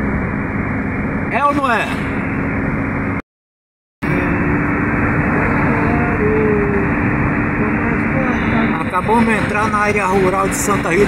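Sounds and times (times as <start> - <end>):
car road and engine noise: 0.0 - 3.2, 4.0 - 11.0
constant low hum: 4.0 - 11.0.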